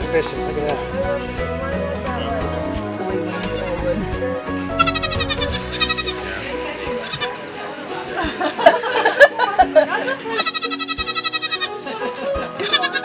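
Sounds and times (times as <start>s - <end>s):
background music: 0.0s - 13.0s
goat kid bleating: 3.4s - 4.0s, 4.8s - 6.2s, 7.0s - 7.4s, 10.4s - 11.8s, 12.6s - 13.0s.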